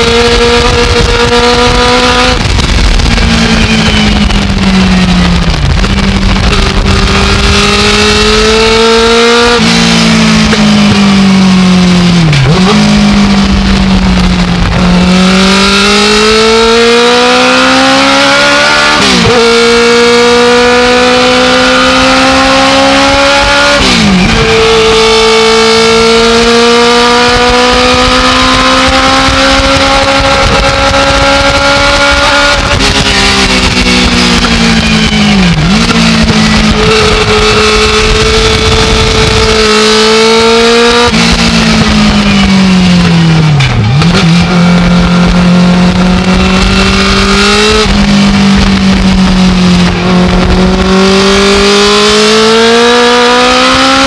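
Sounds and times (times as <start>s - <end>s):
race car engine under load: 0.0s - 54.0s.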